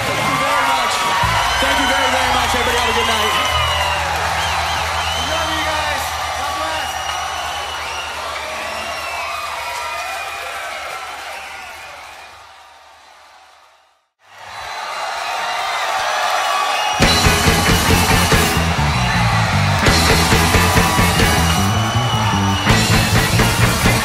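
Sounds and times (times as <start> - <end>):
crowd cheering and whooping: 0.0 - 24.0
rock band playing: 1.2 - 7.6, 17.0 - 24.0.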